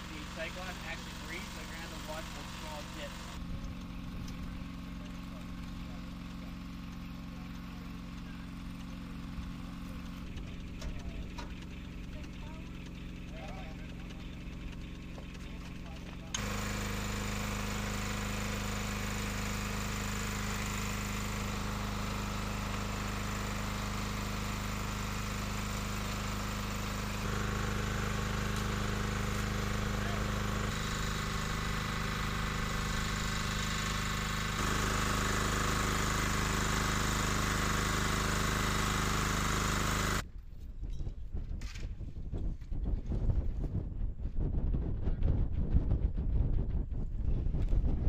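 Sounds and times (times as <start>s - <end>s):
small engine droning: 0.0s - 40.3s.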